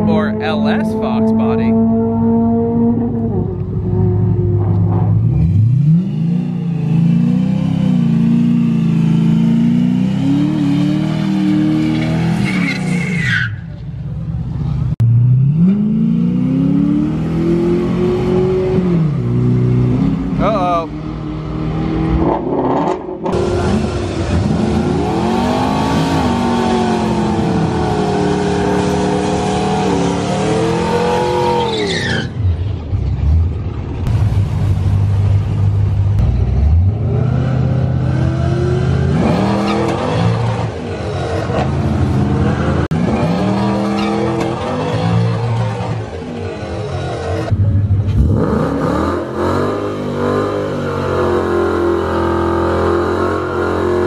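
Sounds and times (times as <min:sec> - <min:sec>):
car engine revving: 0:00.0 - 0:13.2, 0:14.3 - 0:32.2, 0:33.1 - 0:54.0.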